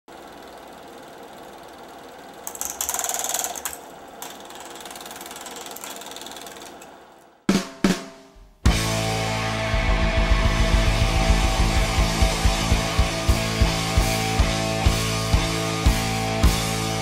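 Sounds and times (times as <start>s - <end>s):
sharp drum hits: 7.5s - 8.9s.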